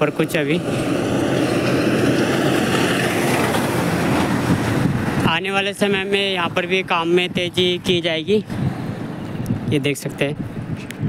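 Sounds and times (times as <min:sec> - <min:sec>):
wind and road rushing noise: 0:00.0 - 0:11.0.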